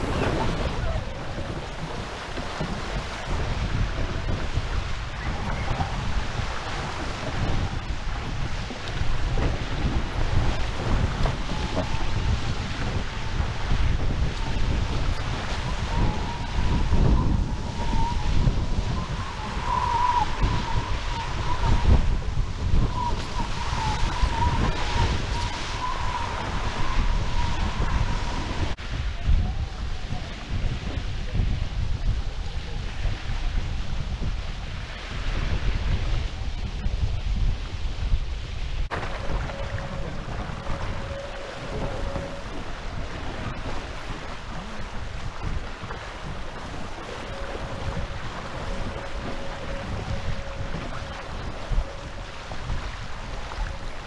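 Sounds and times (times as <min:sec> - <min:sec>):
water rushing past hulls: 0:00.0 - 0:54.0
wind buffeting microphone: 0:00.0 - 0:54.0
high wavering whistle: 0:15.1 - 0:28.7, 0:39.3 - 0:42.7, 0:47.1 - 0:53.0.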